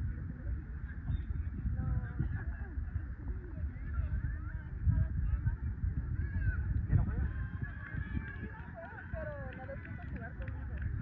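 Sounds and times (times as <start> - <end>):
low rumble on microphone: 0.0 - 11.0.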